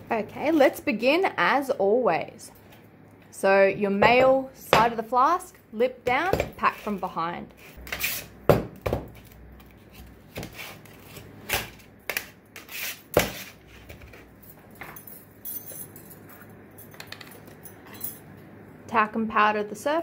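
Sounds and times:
metal clinks and knocks: 14.4s - 18.3s.

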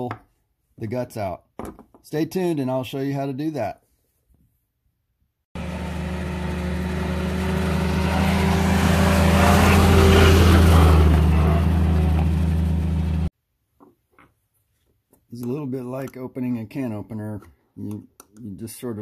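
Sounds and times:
jeep engine running: 5.6s - 13.3s.

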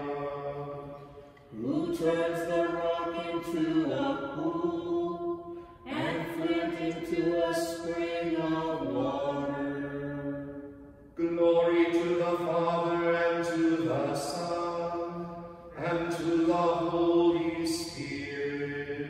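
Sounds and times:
liturgical chant: 0.0s - 19.0s.

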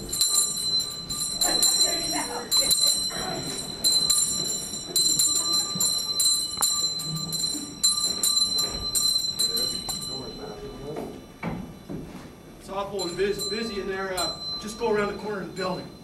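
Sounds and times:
handbell ringing: 0.0s - 10.9s, 12.9s - 16.0s.

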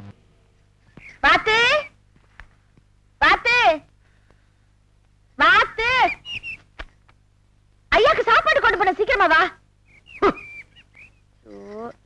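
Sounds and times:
high chirp-like calls: 5.8s - 6.7s.

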